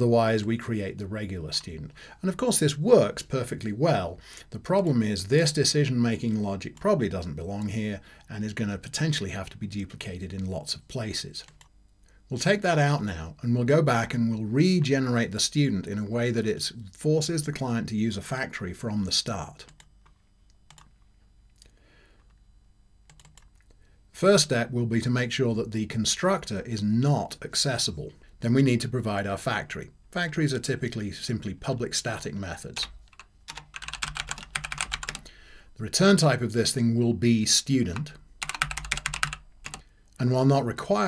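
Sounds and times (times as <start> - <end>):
computer keyboard clicks: 20.7 - 21.0, 23.1 - 23.6, 32.8 - 35.3, 38.4 - 39.8.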